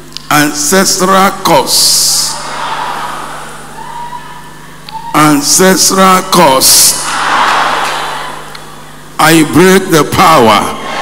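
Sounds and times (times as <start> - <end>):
crowded hall background noise: 0.0 - 11.0
sound system hum: 0.0 - 11.0.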